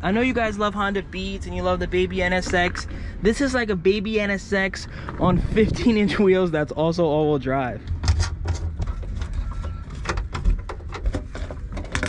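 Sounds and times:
metal panel clicks and knocks: 0:07.9 - 0:12.0.

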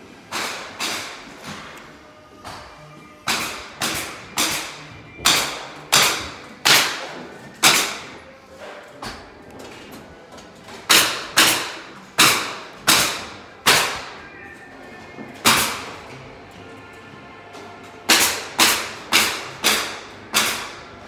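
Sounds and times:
hammer blows ringing in bare rooms: 0:02.5 - 0:08.2, 0:10.9 - 0:14.3, 0:15.4 - 0:16.2, 0:17.5 - 0:20.9.

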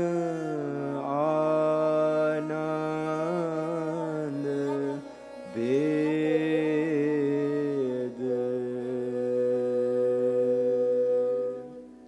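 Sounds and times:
bowed string accompaniment: 0:00.0 - 0:12.0.

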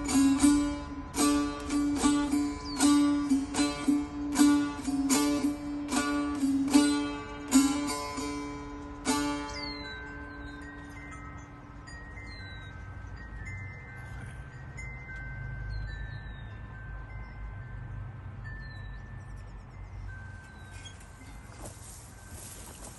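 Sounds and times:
plucked lute note: 0:00.0 - 0:10.6
bird whistling: 0:02.6 - 0:03.0, 0:09.5 - 0:10.7.

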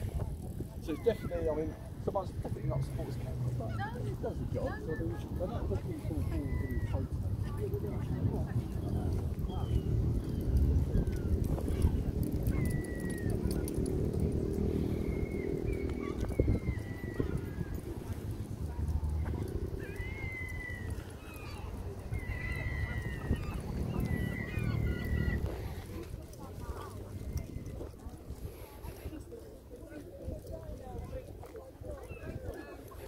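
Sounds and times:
wind rumble on microphone: 0:00.0 - 0:33.0.

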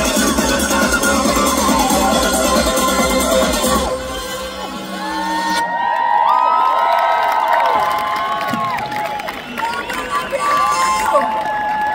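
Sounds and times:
large crowd cheering: 0:00.6 - 0:03.3, 0:04.5 - 0:11.9.

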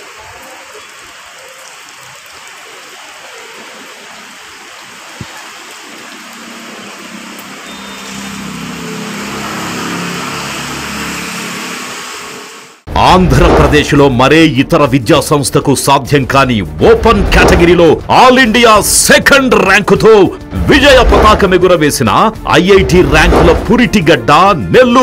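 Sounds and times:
rain falling: 0:00.0 - 0:12.8, 0:20.5 - 0:24.2
vehicle engine on wet road: 0:04.8 - 0:12.8.

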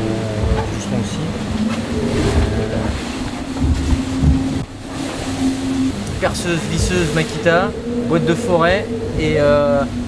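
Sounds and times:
hull rumbling: 0:00.0 - 0:10.0
steady low hum: 0:00.0 - 0:10.0
uneven thumps: 0:01.7 - 0:04.7.

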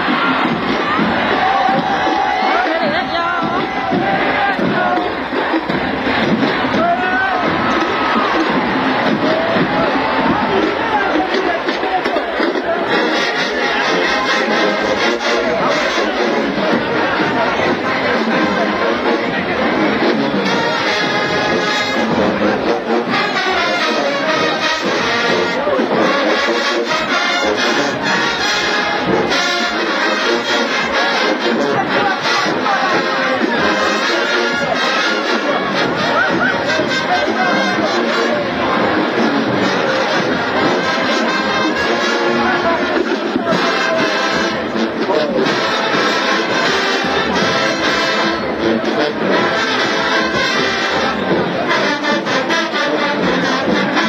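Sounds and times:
marching band brass and drums: 0:00.0 - 0:54.0
stadium crowd cheering: 0:00.0 - 0:54.0.

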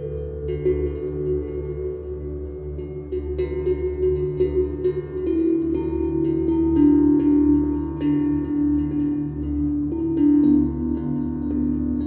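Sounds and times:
ambient new-age music: 0:00.0 - 0:12.0.

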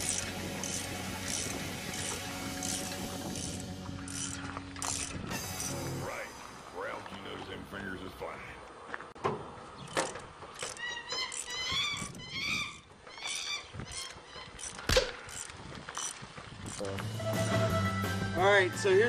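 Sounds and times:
background music with guitar: 0:16.8 - 0:19.0.

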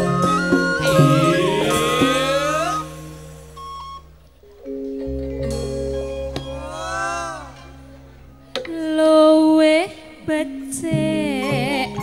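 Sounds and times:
short higher note: 0:00.8 - 0:04.2.

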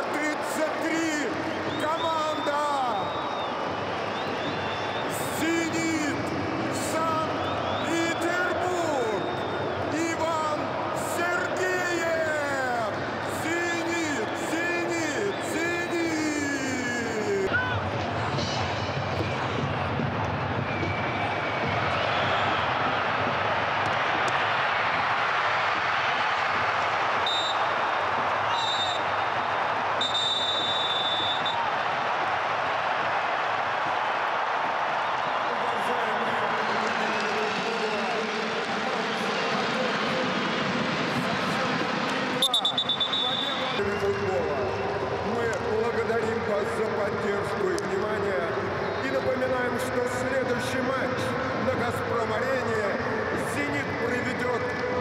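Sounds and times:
stadium crowd din: 0:00.0 - 0:55.0
whistle blasts: 0:27.2 - 0:27.7, 0:28.5 - 0:29.2, 0:30.0 - 0:31.6, 0:42.4 - 0:44.1.

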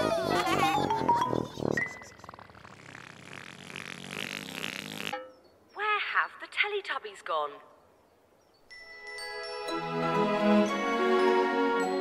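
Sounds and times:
buzzy rasping cartoon effect: 0:00.0 - 0:05.2.

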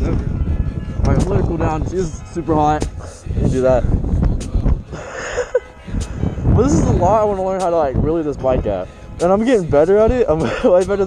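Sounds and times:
wind rumbling on microphone: 0:00.0 - 0:11.0.

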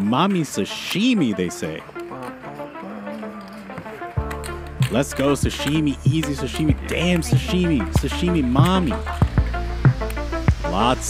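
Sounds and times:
held chord: 0:00.6 - 0:11.0
beat with heavy bass: 0:04.2 - 0:11.0.

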